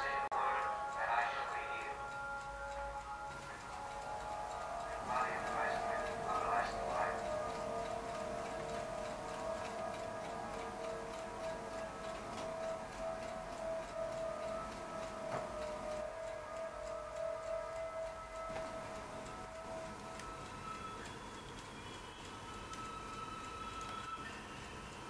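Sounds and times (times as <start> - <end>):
faint ticking: 0.0 - 25.0
steady held tone: 0.0 - 25.0
click: 19.9 - 24.7.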